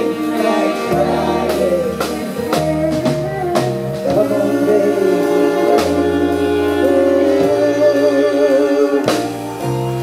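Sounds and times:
soul band playing: 0:00.0 - 0:10.0.

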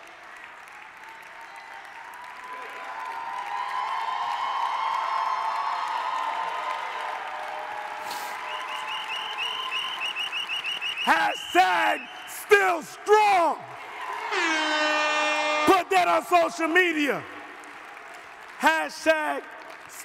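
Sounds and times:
audience applause: 0:00.0 - 0:20.0.

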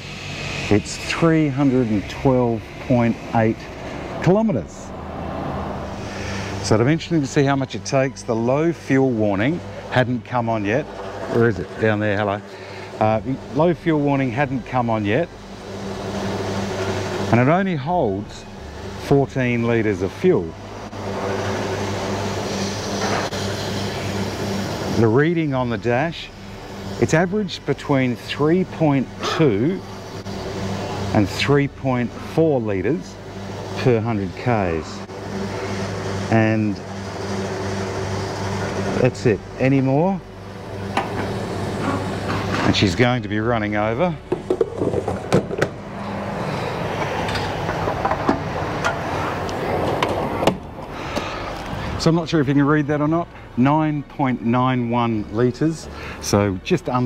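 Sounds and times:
petrol pump motor hum: 0:00.0 - 0:57.0
clunk: 0:44.3 - 0:45.8.

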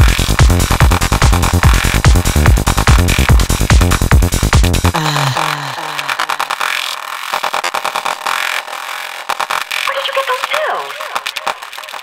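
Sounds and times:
fast clicking percussion: 0:00.0 - 0:04.9, 0:05.9 - 0:12.0
warbling processed voice sounds: 0:05.0 - 0:07.2, 0:09.8 - 0:12.0
spoken-word sample: 0:09.9 - 0:11.2.

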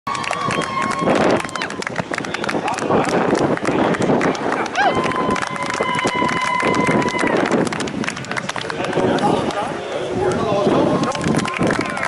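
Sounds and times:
crowd applauding: 0:00.1 - 0:09.6, 0:11.0 - 0:12.0.

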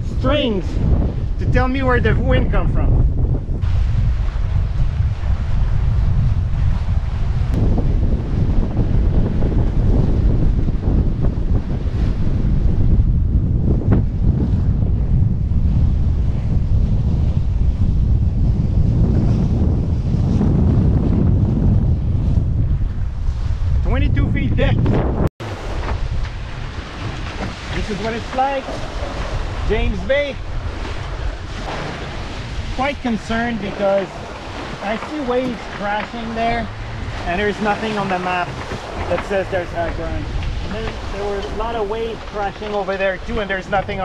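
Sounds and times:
water rushing along hulls: 0:00.0 - 0:44.0
wind buffeting microphone: 0:00.0 - 0:44.0.

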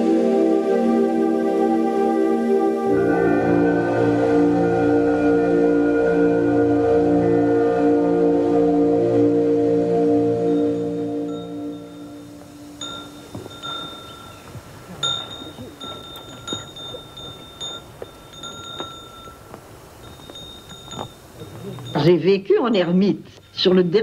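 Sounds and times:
low wavering drone: 0:00.0 - 0:13.3
high clear bell tones: 0:10.5 - 0:23.1.

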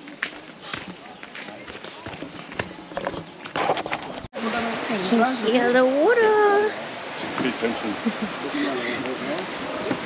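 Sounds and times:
faint voices: 0:00.0 - 0:03.6
footsteps on dirt trail: 0:00.0 - 0:04.2.

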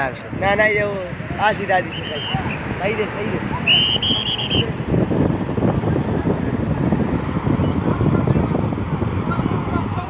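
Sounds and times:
wind on microphone: 0:00.0 - 0:10.0
short high whistle: 0:03.7 - 0:04.7.

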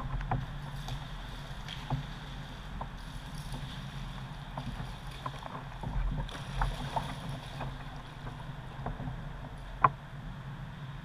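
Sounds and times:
river water lapping against hull: 0:00.0 - 0:10.4.

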